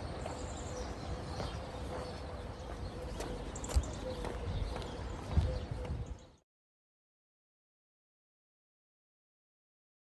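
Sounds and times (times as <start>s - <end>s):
footsteps on hollow wooden boards: 0.1s - 6.1s.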